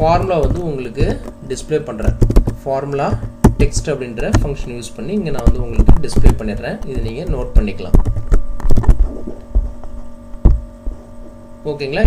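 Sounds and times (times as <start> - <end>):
electrical hum: 0.0 - 12.0
short low thumps: 2.0 - 11.3.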